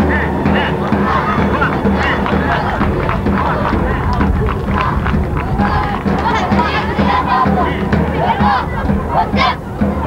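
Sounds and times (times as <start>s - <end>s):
men chanting together: 0.0s - 10.0s.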